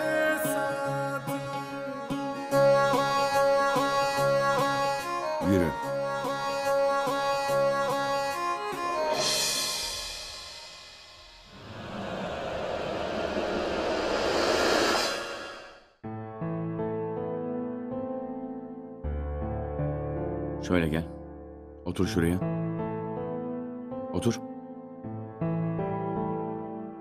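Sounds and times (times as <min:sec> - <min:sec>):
rushes of sound: 0:11.2 - 0:16.0.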